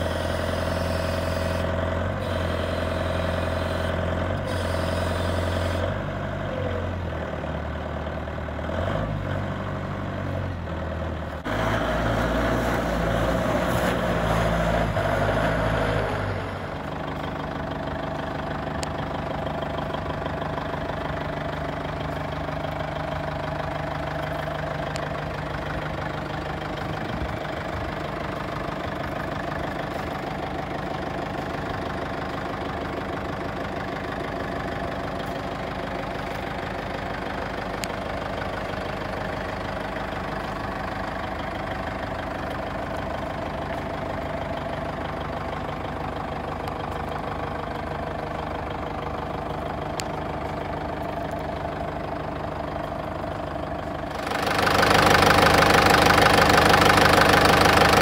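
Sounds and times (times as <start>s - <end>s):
diesel forklift engine running: 0.0s - 58.0s.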